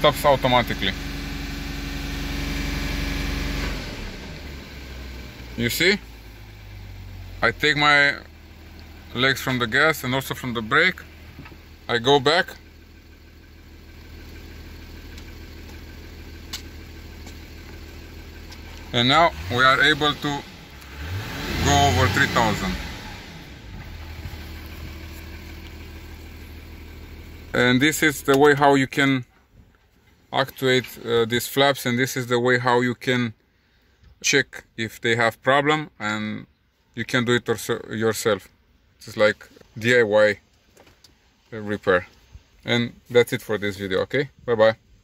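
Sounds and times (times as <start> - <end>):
car engine at raised revs: 0.0 - 29.0.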